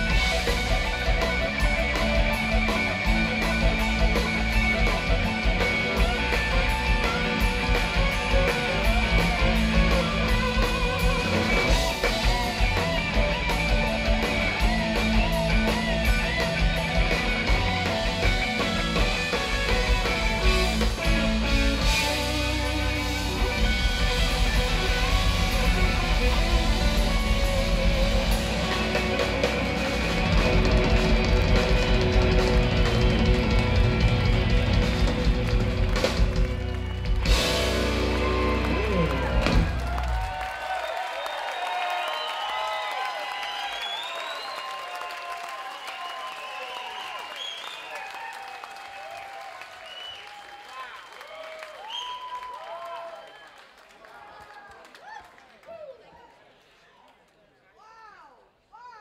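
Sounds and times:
rock band playing live: 0.0 - 40.6
audience cheering and whistling: 21.4 - 56.4.

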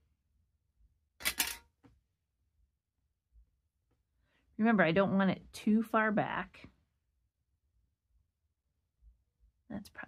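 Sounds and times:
tools clattering on table: 1.2 - 1.7.

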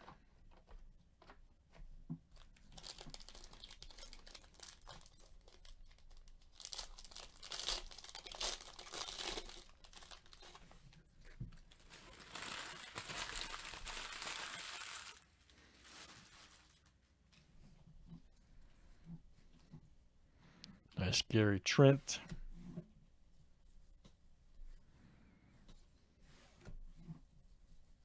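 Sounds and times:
foil wrappers crinkling and tearing: 2.4 - 10.8, 11.5 - 16.9.

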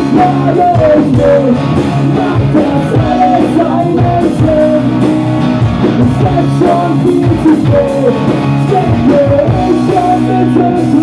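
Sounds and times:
distorted electric guitar: 0.0 - 11.0
drum kit beat: 0.0 - 11.0
electric bass: 0.0 - 11.0.

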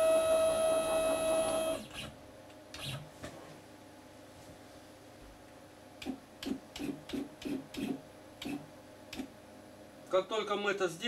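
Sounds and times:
stepper motor buzzes: 0.0 - 2.2.

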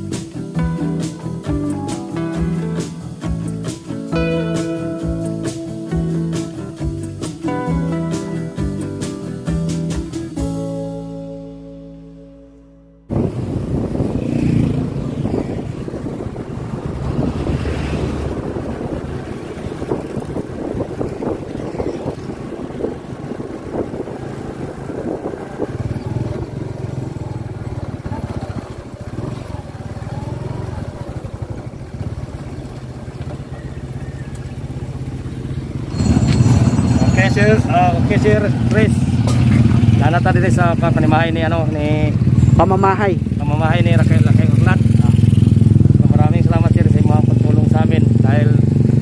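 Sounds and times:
acoustic guitar music: 0.0 - 14.1, 34.5 - 46.0
wind rush on microphone: 13.1 - 32.7
motorcycle engine running: 13.1 - 49.0.

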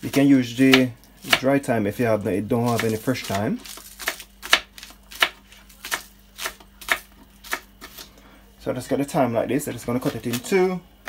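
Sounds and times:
knife chopping on plastic board: 0.0 - 1.5, 2.6 - 8.0.

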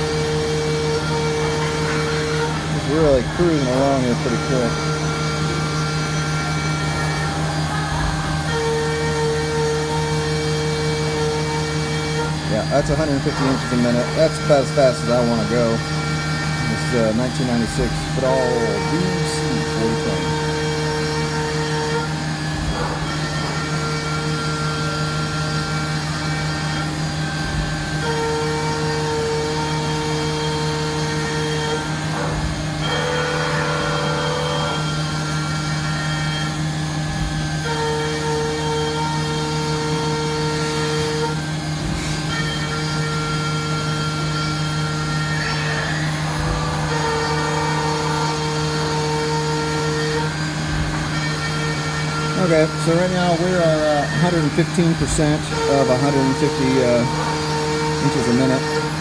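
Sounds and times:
cutter cutting metal: 0.0 - 59.0
milling machine spindle running: 0.0 - 59.0.

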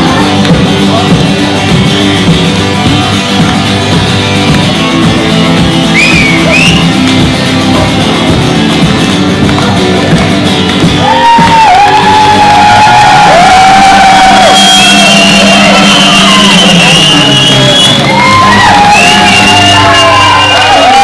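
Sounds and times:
acoustic guitar strummed: 0.0 - 21.0
crowd singing and shouting along: 11.2 - 21.0.

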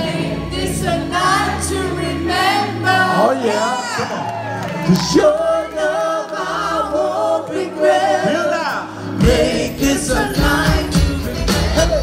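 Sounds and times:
crowd singing pop-soul chorus: 0.0 - 4.2, 4.9 - 12.0
drums and bass beat: 9.2 - 12.0.

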